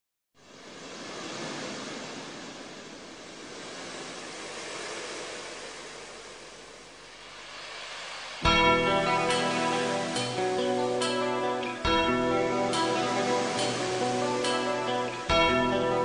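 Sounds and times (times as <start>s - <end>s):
steady rushing noise: 0.4s - 16.0s.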